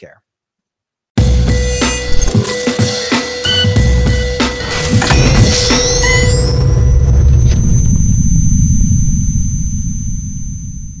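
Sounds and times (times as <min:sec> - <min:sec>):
thin high ringing tones: 0:04.9 - 0:11.0
deep rumbling boom: 0:05.1 - 0:11.0.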